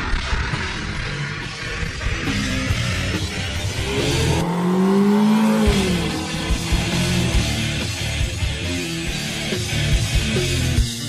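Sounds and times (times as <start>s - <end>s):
rock music: 0.0s - 11.0s
car engine revving past: 2.8s - 8.6s.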